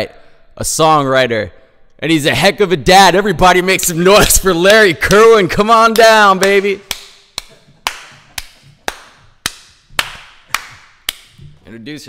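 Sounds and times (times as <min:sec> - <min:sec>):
person clapping hands: 0:06.0 - 0:11.4.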